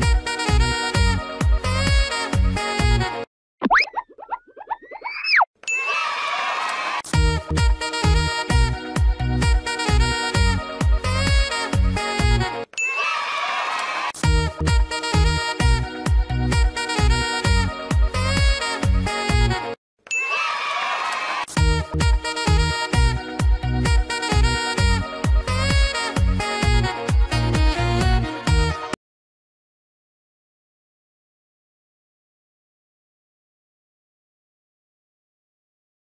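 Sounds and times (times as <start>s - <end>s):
springy cartoon boing: 3.6s - 5.4s
sliding whistle tone: 3.7s - 5.5s
cartoon ding with shimmering ring: 5.6s - 6.0s, 12.8s - 13.1s, 20.1s - 20.6s.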